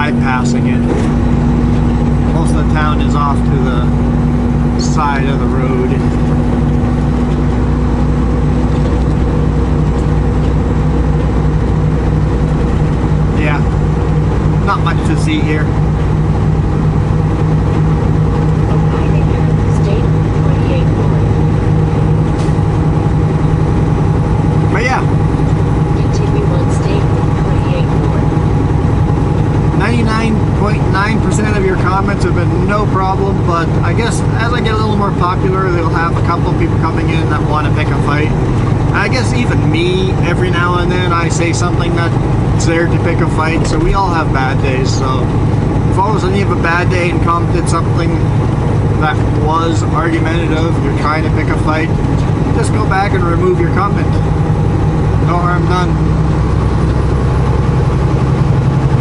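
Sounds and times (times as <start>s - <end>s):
vehicle engine and road noise: 0.0s - 59.0s.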